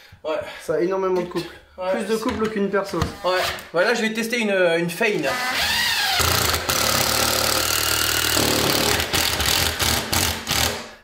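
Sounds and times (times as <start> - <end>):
impact driver driving screw: 5.6 - 10.9.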